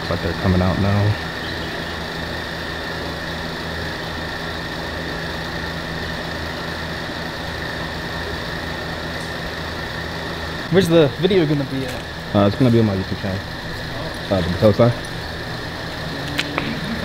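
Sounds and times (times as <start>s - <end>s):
faint high whine: 0.0s - 17.0s
steady mechanical hum: 0.0s - 17.0s.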